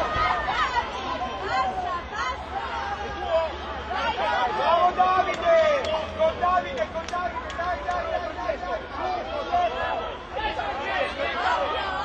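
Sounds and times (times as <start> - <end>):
children shouting and calling: 0.0 - 5.8.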